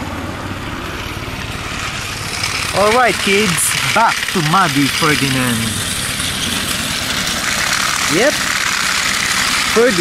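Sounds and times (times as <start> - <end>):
toy train motor whirring: 2.0 - 10.0
rattle of toy train wheels: 2.2 - 10.0.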